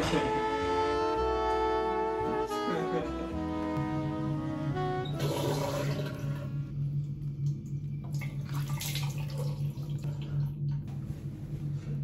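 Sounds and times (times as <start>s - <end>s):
music: 0.0s - 8.1s
steady low hum: 0.0s - 12.0s.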